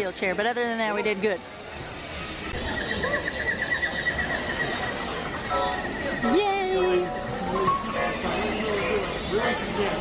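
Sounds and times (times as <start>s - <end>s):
faint background murmur: 0.0s - 10.0s
high warbling animal call: 2.6s - 7.1s.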